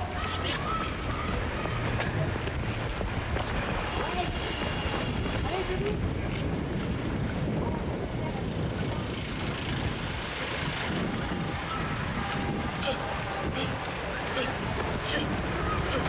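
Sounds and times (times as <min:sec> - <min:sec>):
buses and cars passing: 0:00.0 - 0:16.0
wind rumbling on microphone: 0:00.0 - 0:16.0.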